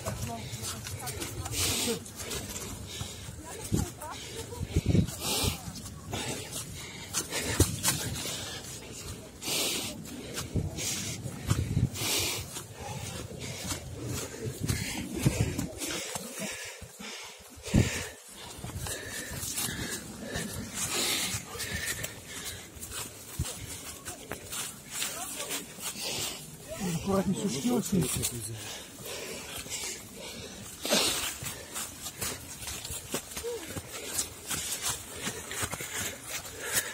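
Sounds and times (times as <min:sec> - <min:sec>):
runner breathing hard: 0:00.0 - 0:36.9
footsteps crunching dry leaves: 0:18.9 - 0:36.9.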